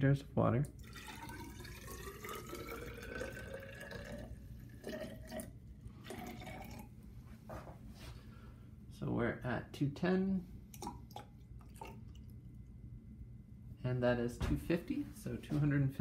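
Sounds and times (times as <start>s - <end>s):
water pouring into plastic cylinder: 0.7s - 6.9s, 10.7s - 12.5s
water trickling: 0.7s - 6.9s, 10.7s - 12.6s.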